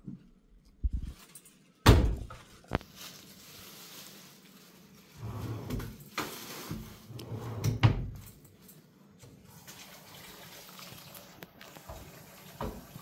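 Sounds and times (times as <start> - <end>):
kitchen drawer opening and shutting: 5.2 - 8.3.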